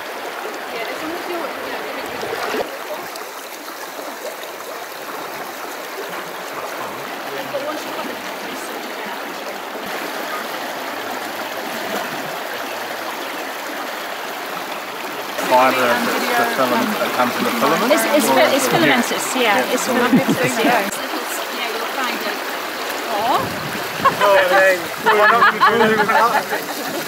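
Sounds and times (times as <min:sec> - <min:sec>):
river rushing over gravel: 0:00.0 - 0:27.0.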